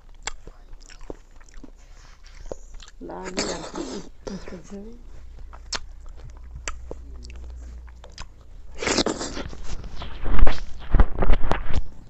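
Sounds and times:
wet chewing and mouth clicks: 0.0 - 4.4, 5.0 - 10.6.

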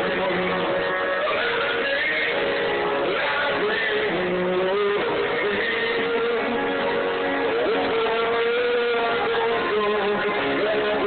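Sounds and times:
guitars strumming: 0.0 - 11.0
live rock band playing: 0.0 - 11.0.

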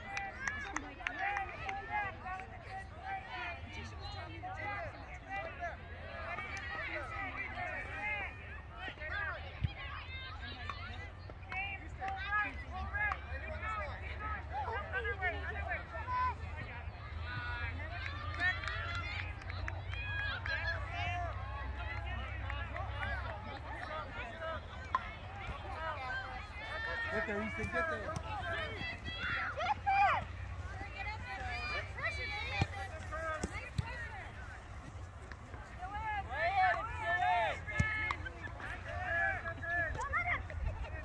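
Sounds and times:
distant children and adults shouting: 17.2 - 34.6.

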